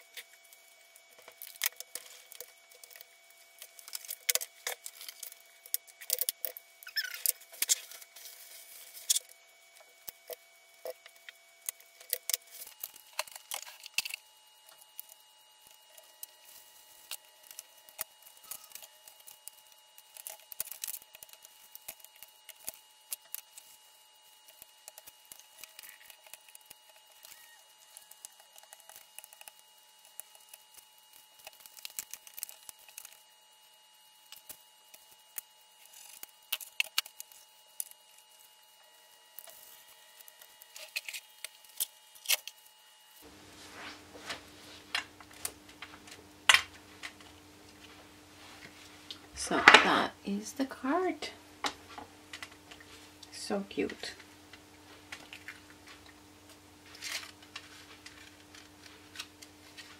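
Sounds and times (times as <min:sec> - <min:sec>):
paper rustling: 0:43.2 - 0:47.2
paper envelope being folded: 0:56.8 - 0:59.9.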